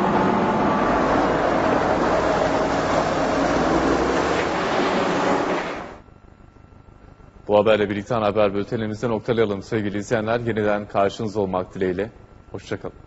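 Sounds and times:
diesel machinery rumbling: 0.0 - 6.0.

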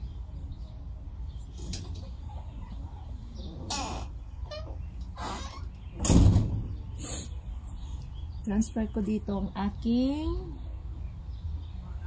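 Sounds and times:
bird harsh calls: 1.3 - 8.4.

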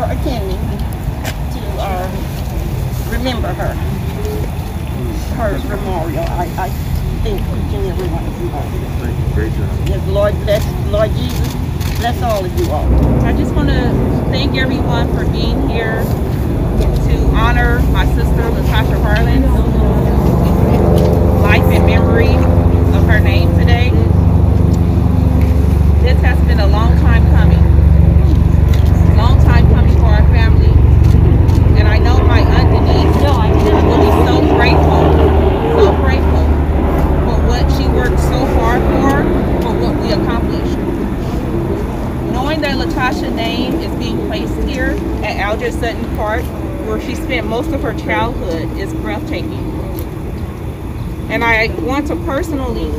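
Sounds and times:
people's voices: 0.0 - 52.9
vehicle engine rumbling: 0.0 - 52.9.

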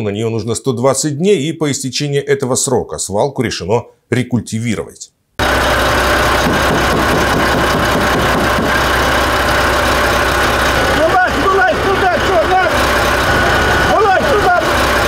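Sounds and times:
man's voice: 0.0 - 5.1, 10.9 - 12.8, 13.9 - 14.8
diesel truck engine idling: 5.4 - 15.0.

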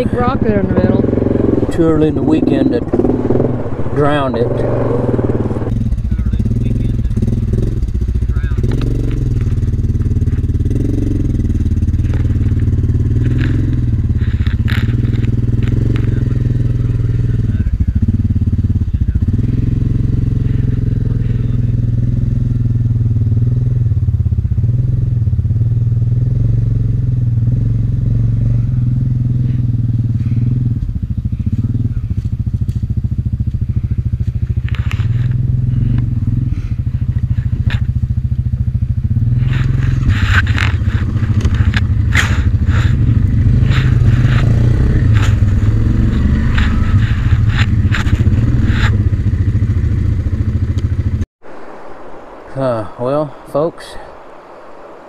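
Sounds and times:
atv engine humming: 0.0 - 55.0
dry leaves and twigs crackling: 31.3 - 50.4.

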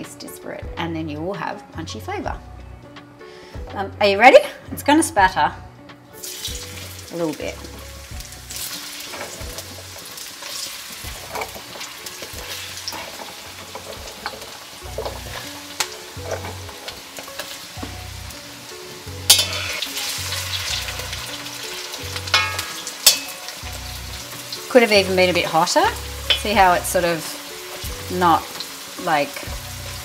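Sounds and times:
potatoes sizzling in hot oil: 6.1 - 30.0
metal spatula turning food: 8.3 - 18.4, 19.0 - 24.6.

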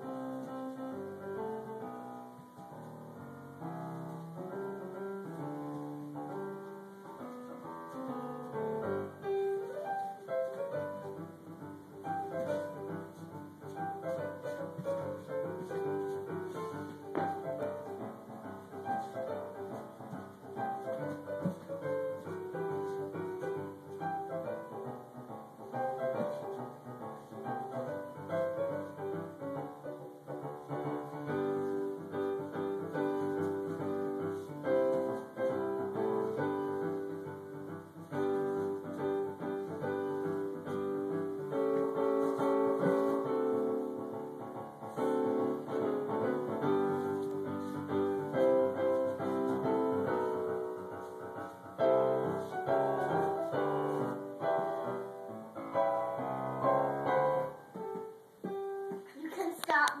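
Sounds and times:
piano music: 0.0 - 60.0.

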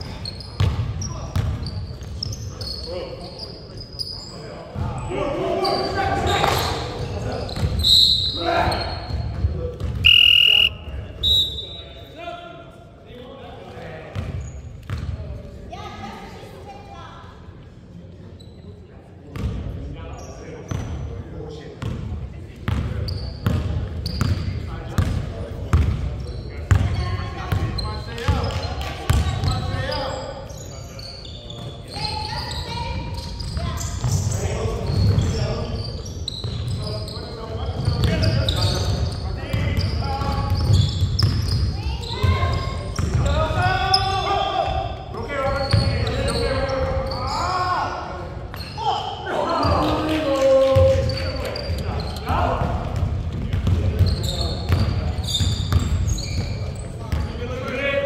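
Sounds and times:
basketball bouncing on hardwood court: 0.6 - 1.6, 14.9 - 15.1, 26.7 - 26.9, 39.6 - 43.3, 52.6 - 57.3
players calling out: 10.0 - 11.7.

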